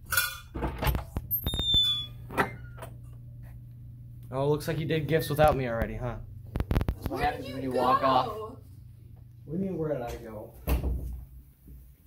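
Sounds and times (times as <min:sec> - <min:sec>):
door squeaking open: 0:01.3 - 0:02.8.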